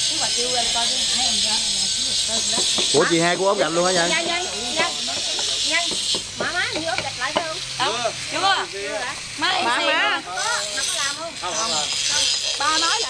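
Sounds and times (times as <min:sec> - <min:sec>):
people talking: 0:00.0 - 0:13.0
steady high hiss: 0:00.0 - 0:13.0.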